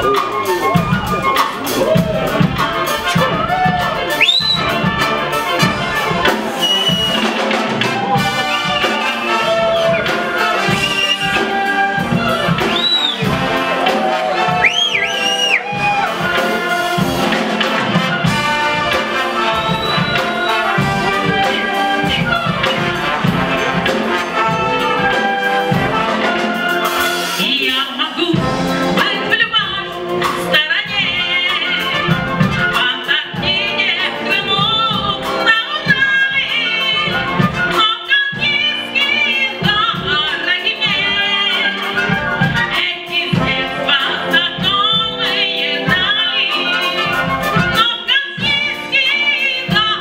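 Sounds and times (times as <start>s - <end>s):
brass band with drum kit: 0.0s - 50.0s.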